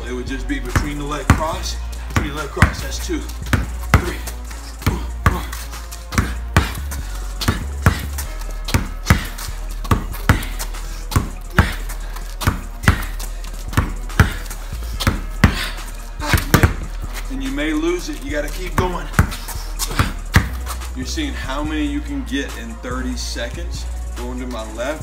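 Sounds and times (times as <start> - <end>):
basketball bouncing on concrete: 0.4 - 21.0.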